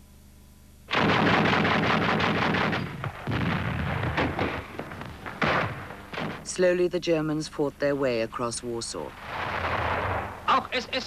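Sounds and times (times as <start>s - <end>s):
rapid gunfire: 0.9s - 6.5s, 9.2s - 10.6s.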